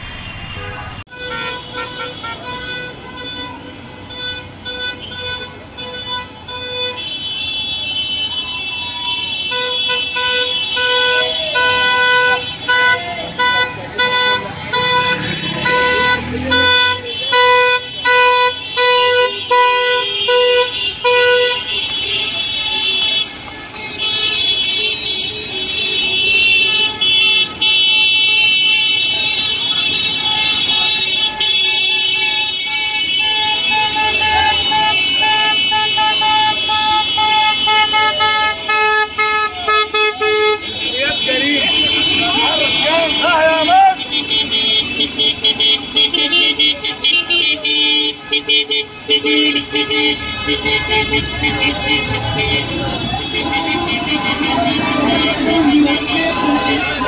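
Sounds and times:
car horns honking: 0:00.0 - 0:57.0.

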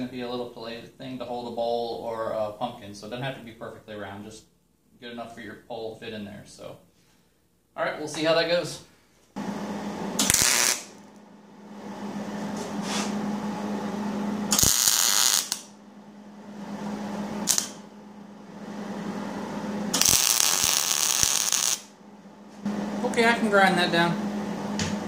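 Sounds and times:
steady low hum: 0:00.0 - 0:25.0
welding arc crackle: 0:10.2 - 0:11.2, 0:14.5 - 0:15.7, 0:17.4 - 0:17.8, 0:19.9 - 0:21.9.

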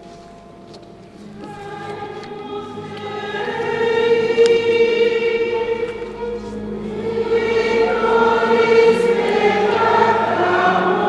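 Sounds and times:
choir singing a hymn: 0:01.2 - 0:11.0.

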